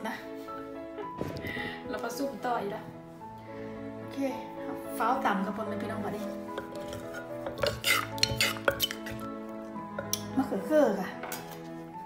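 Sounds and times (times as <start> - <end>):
background music: 0.0 - 12.0
metal spoon scraping in mortar: 6.2 - 9.4.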